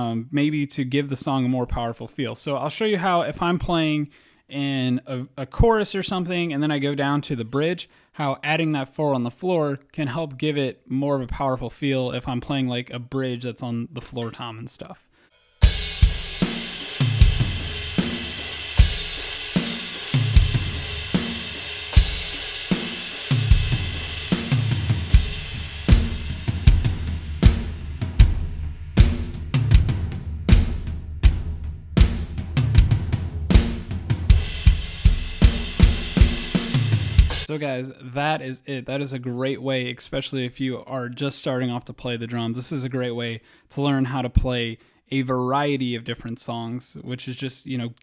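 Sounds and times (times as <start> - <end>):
cymbals: 15.3 - 37.6
drum kit groove: 15.3 - 37.6
floor tom: 15.4 - 37.5.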